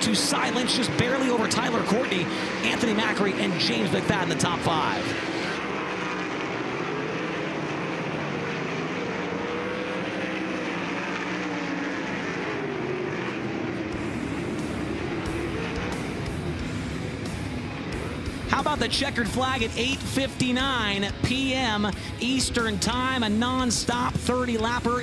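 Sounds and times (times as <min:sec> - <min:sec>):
race car engines running: 0:00.0 - 0:25.0
music: 0:00.2 - 0:03.4, 0:14.0 - 0:25.0.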